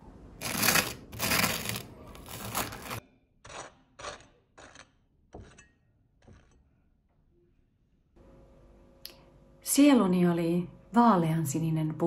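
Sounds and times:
knife scraping butter on toast: 0.4 - 6.6.

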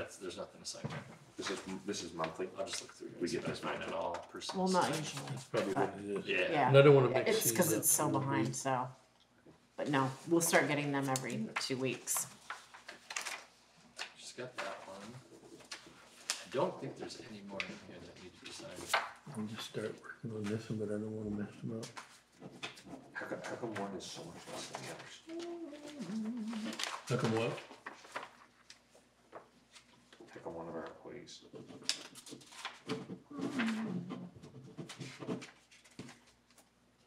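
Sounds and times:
paper rustling: 1.4 - 5.8, 11.8 - 16.6, 21.9 - 30.9, 31.5 - 36.6
person humming low: 25.3 - 26.8, 33.3 - 34.3.

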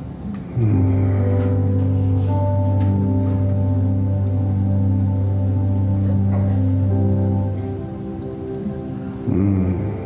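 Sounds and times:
deep keyboard pad chord: 0.0 - 10.0
soft music: 0.0 - 10.0.

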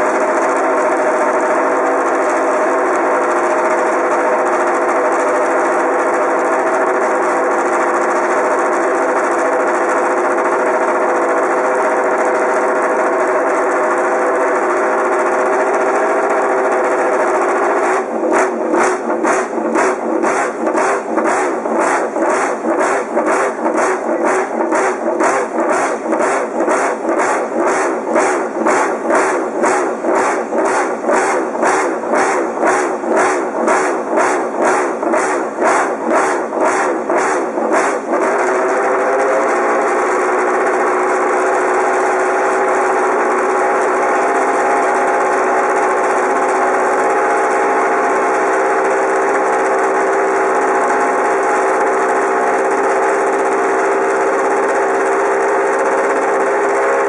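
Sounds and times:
racing motorcycle engine revving: 0.0 - 57.0.

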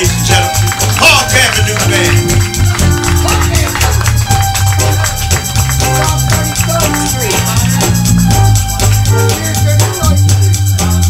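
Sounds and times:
person singing: 0.0 - 4.5
live band playing: 0.0 - 11.0.

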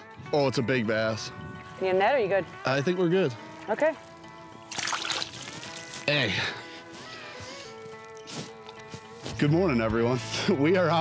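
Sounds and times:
background music sustained chords: 0.0 - 11.0.

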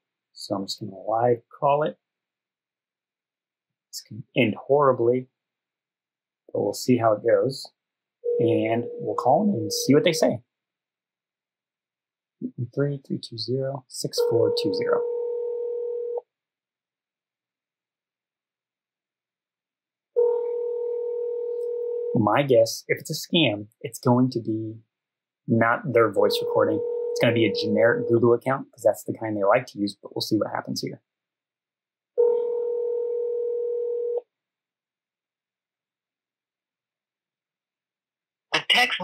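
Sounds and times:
phone ringing tone: 8.2 - 9.8, 14.2 - 16.2, 20.2 - 22.2, 26.2 - 28.2, 32.2 - 34.2
telephone ringback tone: 8.3 - 9.2, 20.2 - 22.1.

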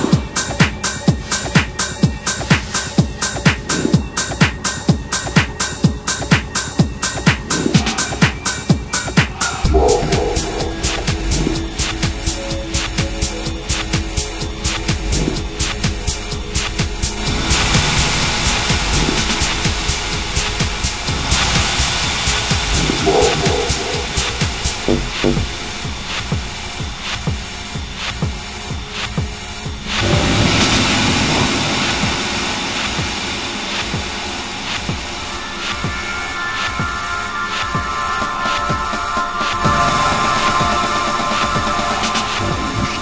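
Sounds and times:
techno beat: 0.0 - 43.0
noisy synth textures: 9.4 - 43.0
wash of noise: 29.9 - 35.3.

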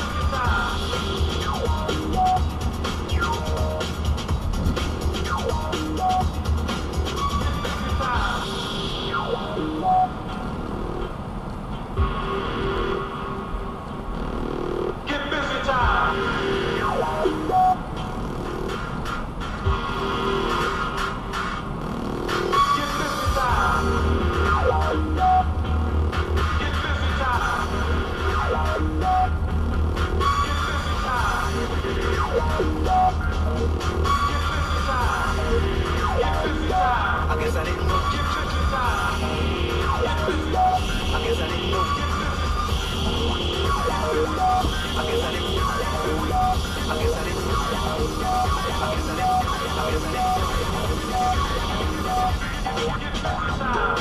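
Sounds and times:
electronic music on car radio: 0.0 - 54.0.

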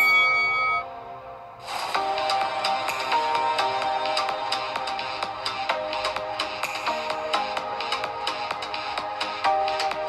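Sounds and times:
electronic timer chime: 0.0 - 1.0
electronic music with steady beat: 0.0 - 10.0.

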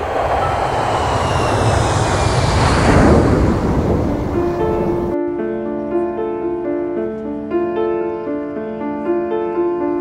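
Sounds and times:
faint falling engine whine: 0.0 - 5.2
jet airliner passing overhead: 0.0 - 5.2.

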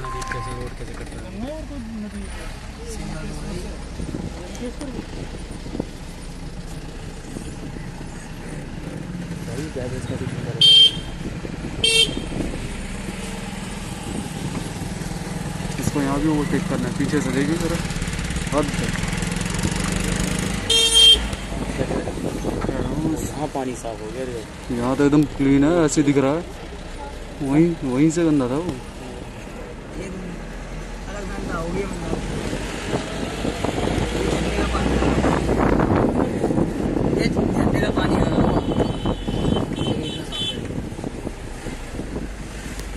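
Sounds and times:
vehicle engine running: 0.0 - 38.7.

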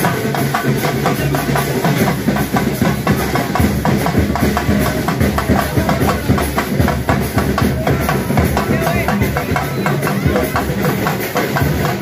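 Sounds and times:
music with loud rhythmic drumming: 0.0 - 12.0.

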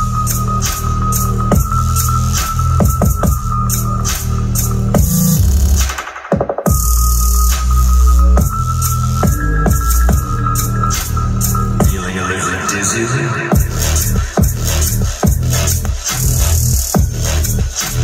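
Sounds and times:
electronic bass music: 0.0 - 6.0, 6.7 - 18.0.

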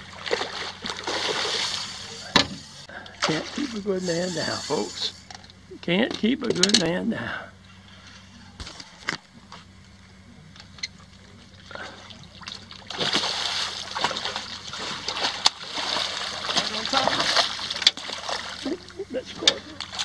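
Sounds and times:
fish thrashing and splashing: 0.0 - 2.3, 3.1 - 5.1, 11.1 - 20.0.

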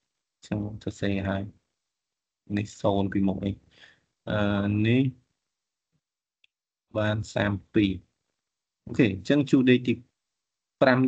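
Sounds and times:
person talking: 0.5 - 1.5, 2.5 - 3.6, 4.3 - 5.1, 7.0 - 8.0, 8.9 - 10.0.

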